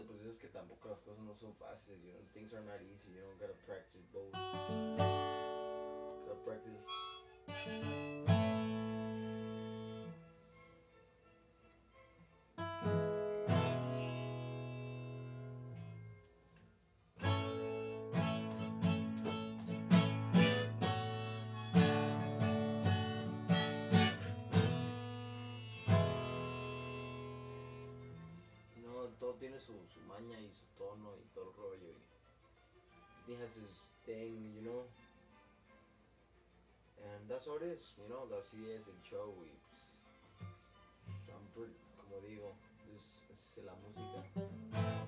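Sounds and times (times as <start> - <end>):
acoustic guitar strumming: 4.3 - 10.5, 12.6 - 16.3, 17.2 - 28.6, 43.9 - 45.0
harmonica: 4.3 - 11.4, 12.6 - 16.5, 17.2 - 28.9, 44.0 - 45.0.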